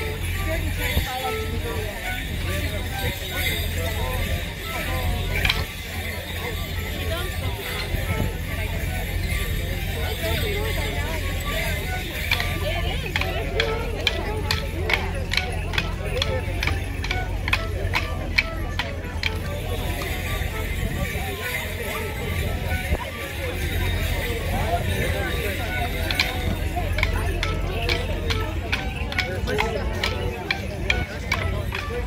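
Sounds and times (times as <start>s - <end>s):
leg bells jingling: 0.0s - 32.0s
wooden sticks clacking: 5.4s - 5.7s, 13.1s - 20.6s, 26.0s - 32.0s.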